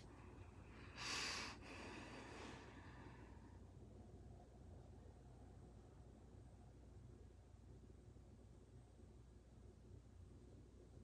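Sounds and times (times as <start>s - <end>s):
person exhaling sharply: 0.9s - 2.7s.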